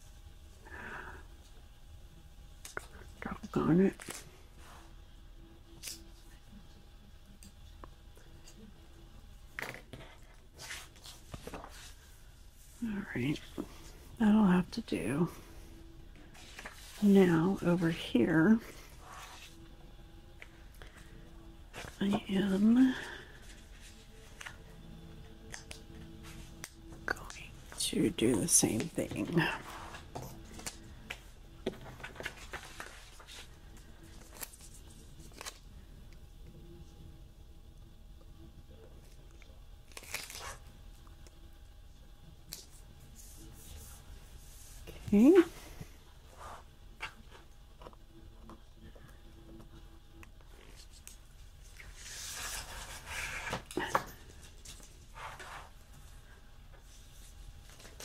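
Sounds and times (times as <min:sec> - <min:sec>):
paper rustling: 0:16.3 - 0:17.1, 0:29.6 - 0:35.6.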